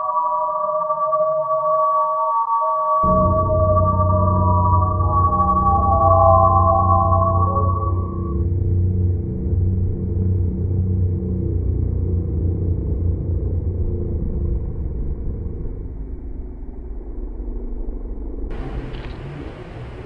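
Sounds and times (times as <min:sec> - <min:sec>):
low rumbling drone: 0:03.0 - 0:20.0.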